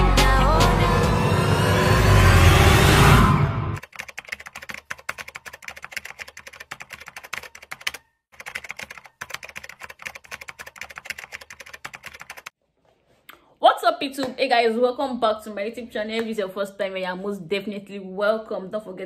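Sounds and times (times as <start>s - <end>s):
music: 0.0s - 3.8s
computer keyboard typing: 3.8s - 12.5s.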